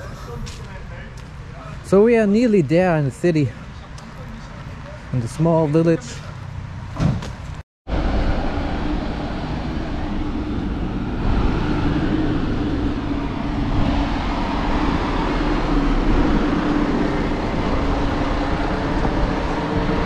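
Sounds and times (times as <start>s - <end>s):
city street traffic: 0.0s - 20.0s.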